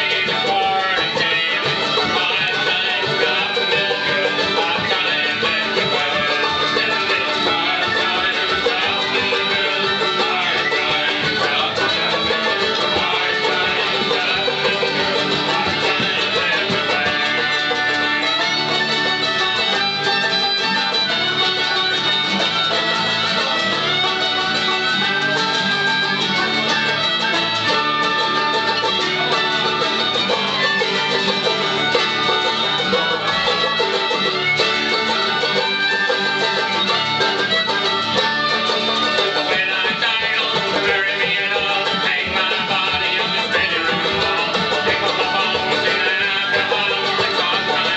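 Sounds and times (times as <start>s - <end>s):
person singing: 0.0s - 25.6s, 28.1s - 47.9s
acoustic guitars: 0.0s - 47.9s
strummed banjo: 0.0s - 47.9s.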